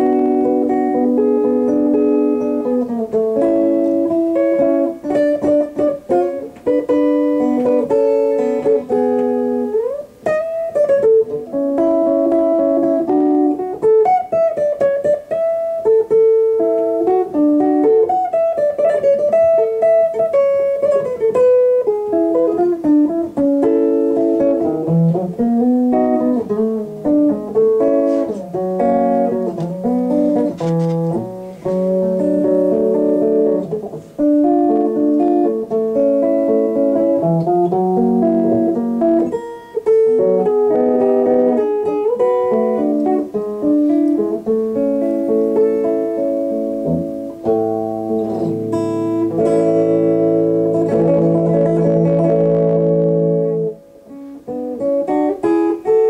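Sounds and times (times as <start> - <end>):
instrumental band music: 0.0 - 56.0
steel guitar melody: 0.0 - 56.0.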